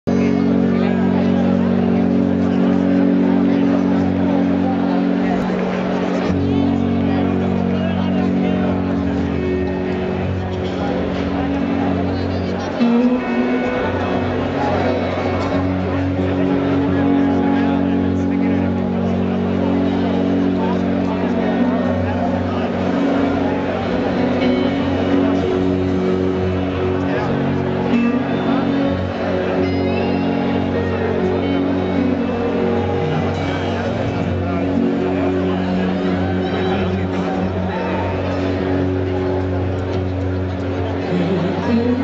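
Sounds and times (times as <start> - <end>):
band playing droning chord: 0.0 - 42.0
crowd noise: 0.0 - 42.0.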